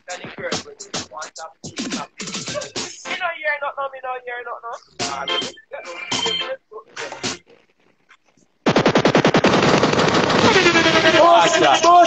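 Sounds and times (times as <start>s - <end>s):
machine-gun rapid fire: 8.6s - 12.0s.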